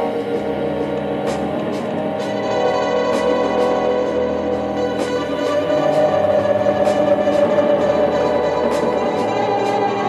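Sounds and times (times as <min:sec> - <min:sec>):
bass: 0:00.0 - 0:10.0
drums: 0:00.0 - 0:10.0
electric keyboard chords: 0:00.0 - 0:10.0.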